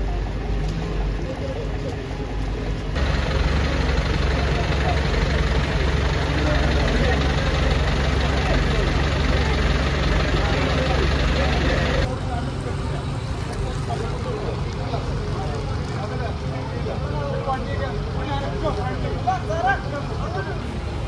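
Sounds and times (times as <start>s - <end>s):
people talking: 0.0s - 21.0s
vehicle engine idling: 0.0s - 21.0s.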